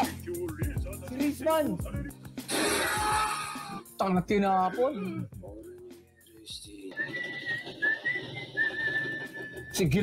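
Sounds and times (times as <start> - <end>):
high whistled note: 6.9 - 9.8.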